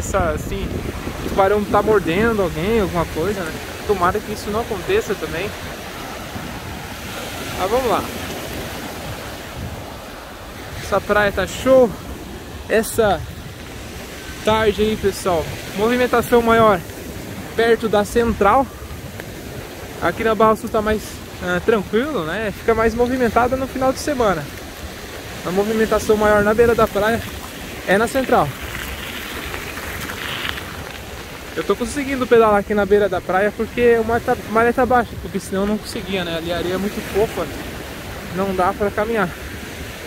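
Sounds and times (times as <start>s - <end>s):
man's voice: 0.0s - 5.6s, 10.8s - 12.0s, 14.4s - 16.9s, 25.4s - 27.3s
small waves washing on sand: 0.0s - 40.0s
wind buffeting microphone: 0.0s - 40.0s.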